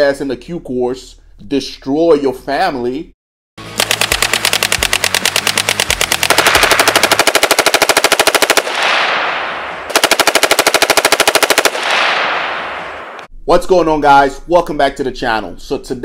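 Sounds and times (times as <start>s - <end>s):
machine gun firing bursts: 3.6s - 12.6s
gunfire echo: 3.6s - 13.3s.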